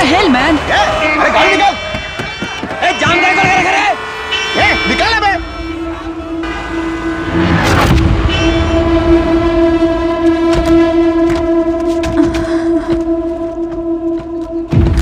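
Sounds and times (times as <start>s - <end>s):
vehicle horn blast: 0.0s - 14.7s.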